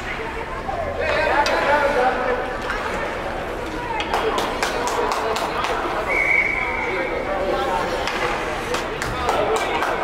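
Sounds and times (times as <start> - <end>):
murmur of voices: 0.0 - 10.0
referee's whistle blow: 6.1 - 6.9.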